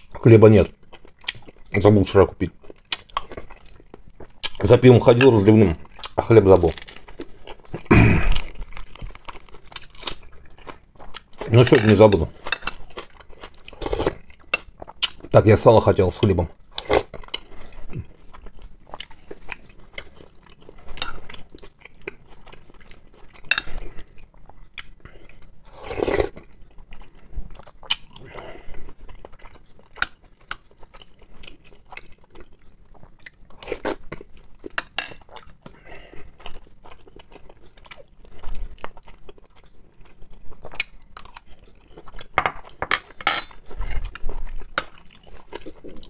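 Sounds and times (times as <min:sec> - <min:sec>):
man chewing food: 0:00.0 - 0:15.4, 0:16.4 - 0:46.0.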